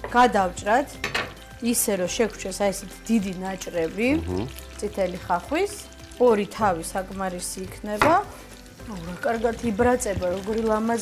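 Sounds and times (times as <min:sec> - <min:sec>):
oil sizzling: 0:00.0 - 0:11.0
person talking: 0:04.0 - 0:04.5.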